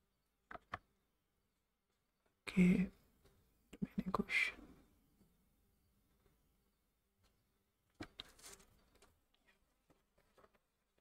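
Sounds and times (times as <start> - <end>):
paper rustling: 7.2 - 11.0.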